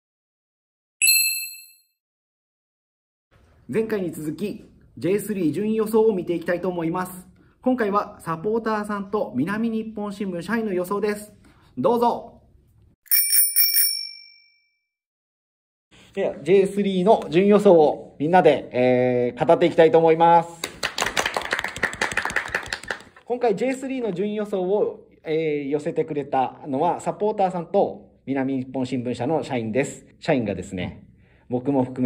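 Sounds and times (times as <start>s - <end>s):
bright bell-like ding: 1.0s - 2.0s.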